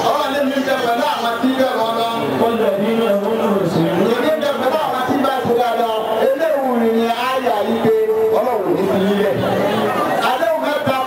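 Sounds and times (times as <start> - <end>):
man speaking into a microphone: 0.0 - 11.0.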